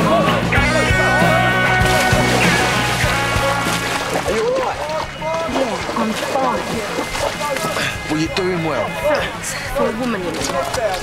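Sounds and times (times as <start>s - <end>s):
people shouting: 0.0s - 8.0s
rock music: 0.0s - 9.5s
water sloshing: 1.4s - 11.0s.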